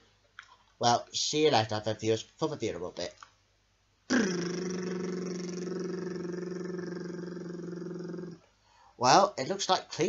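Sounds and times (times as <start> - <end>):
man humming low note: 4.1 - 8.4.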